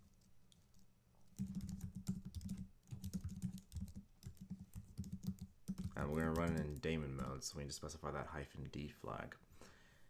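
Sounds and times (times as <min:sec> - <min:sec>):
computer keyboard typing: 0:01.3 - 0:07.4.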